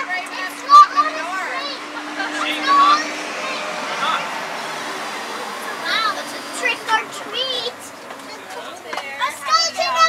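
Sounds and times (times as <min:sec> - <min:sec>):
children's excited voices: 0:00.0 - 0:10.0.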